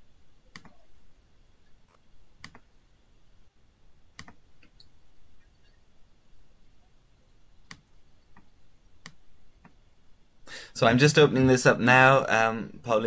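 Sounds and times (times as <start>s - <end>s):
computer mouse clicks: 0.5s - 0.8s, 1.9s - 2.7s, 4.2s - 4.9s, 7.6s - 9.8s.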